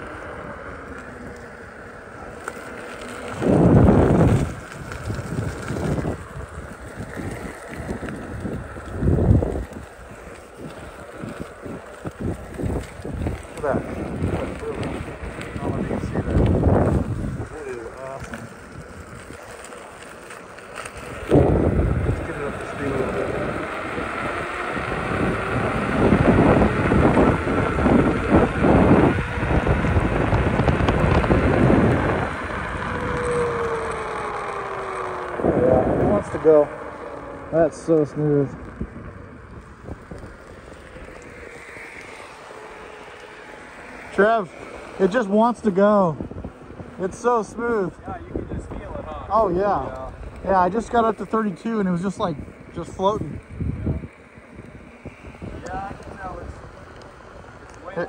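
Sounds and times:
wheel road noise on asphalt: 0.0 - 58.0
wind buffeting microphone: 0.0 - 58.0.

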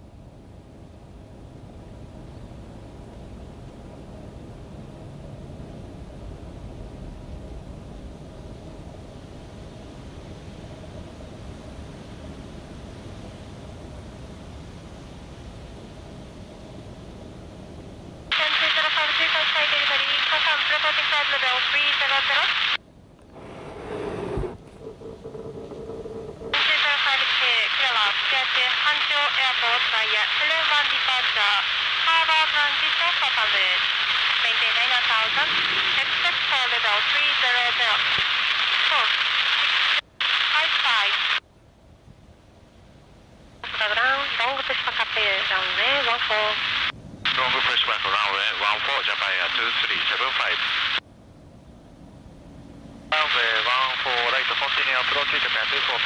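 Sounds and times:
tinny radio voice transmissions: 18.3 - 22.7, 26.6 - 41.2, 43.6 - 51.0, 53.1 - 56.0.

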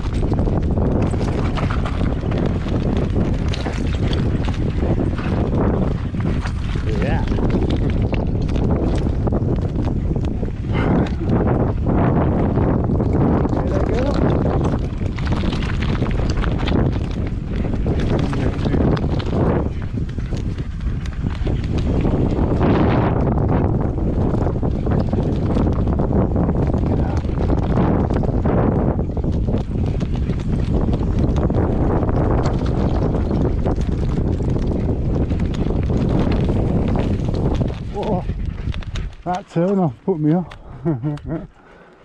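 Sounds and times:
wind buffeting microphone: 0.0 - 42.0.

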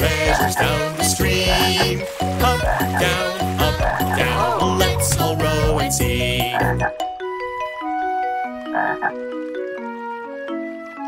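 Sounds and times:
instrumental children's song: 0.0 - 11.0
cartoon frog croaks: 8.8 - 9.1.

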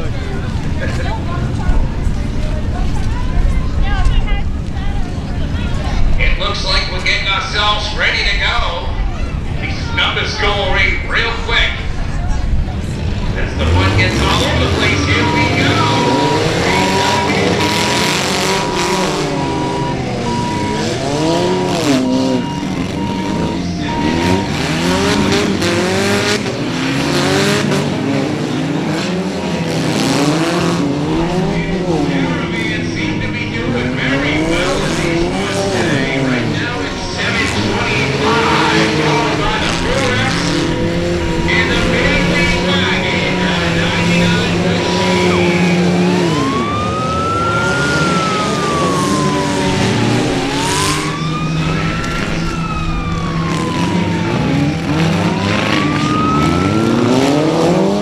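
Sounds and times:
car engines revving: 0.0 - 58.0
steady high tone: 13.4 - 26.4.

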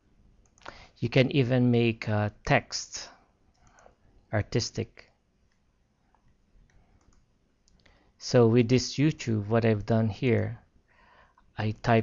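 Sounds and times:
computer mouse clicks: 0.4 - 0.8, 3.5 - 3.9, 5.0 - 8.0.

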